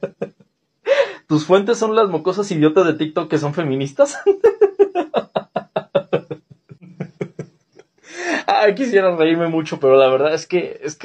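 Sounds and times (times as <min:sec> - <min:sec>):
man laughing: 0:00.0 - 0:00.5, 0:04.0 - 0:08.3.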